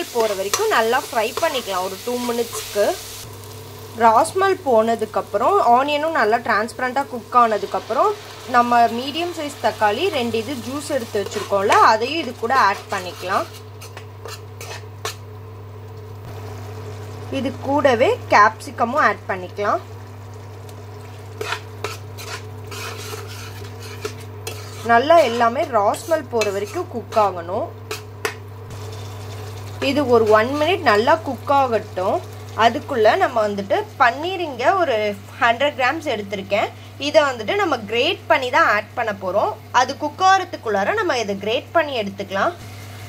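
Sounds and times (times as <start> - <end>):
food sizzling in pan: 0.0 - 43.0
steady low hum: 0.0 - 43.0
spatula scraping metal pan: 10.0 - 15.2, 21.3 - 28.1.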